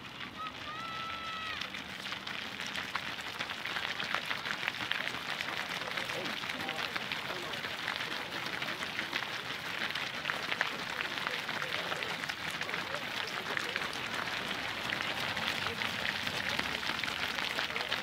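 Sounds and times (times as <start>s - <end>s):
runners' footsteps on asphalt: 0.0s - 18.0s
scattered voices: 5.4s - 18.0s.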